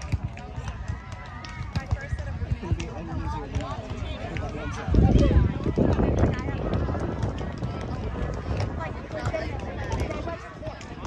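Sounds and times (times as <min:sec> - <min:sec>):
distant people chattering: 0:00.0 - 0:11.0.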